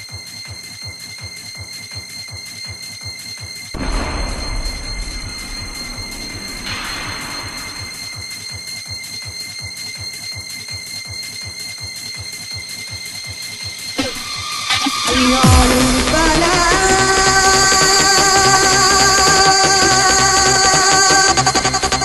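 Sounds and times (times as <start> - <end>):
steady high tones: 1.5 - 22.0
swell of noise: 3.8 - 8.8, 13.8 - 22.0
dance music: 13.3 - 22.0.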